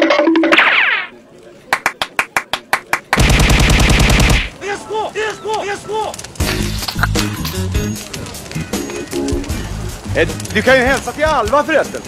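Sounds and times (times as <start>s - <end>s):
rapid machine-gun-like rattle: 3.2s - 4.5s.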